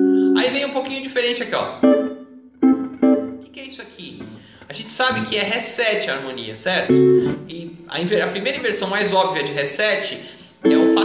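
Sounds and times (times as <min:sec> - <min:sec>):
jazz guitar chords: 0:00.0 - 0:00.6, 0:01.6 - 0:05.4, 0:06.8 - 0:08.7, 0:10.6 - 0:11.0.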